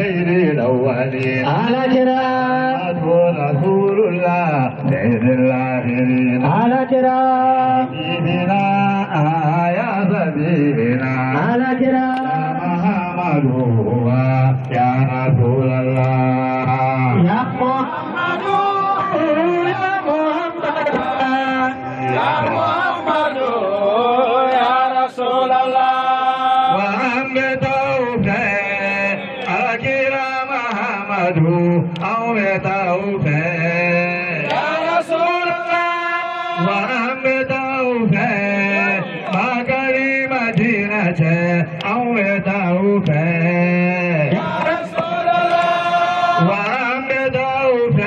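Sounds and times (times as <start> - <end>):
man chanting over loudspeaker: 0.0 - 48.0.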